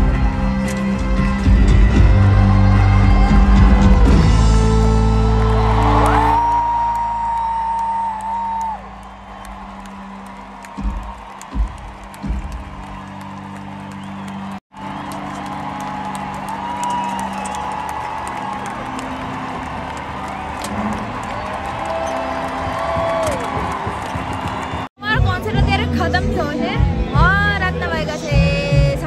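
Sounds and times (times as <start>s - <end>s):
crowd cheering and whooping: 1.8s - 24.9s
low thumps: 10.6s - 13.3s.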